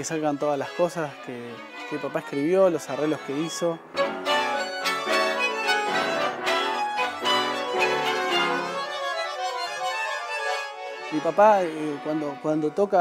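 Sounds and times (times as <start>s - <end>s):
tango music with bandoneon: 0.0s - 13.0s
violins playing: 0.0s - 13.0s.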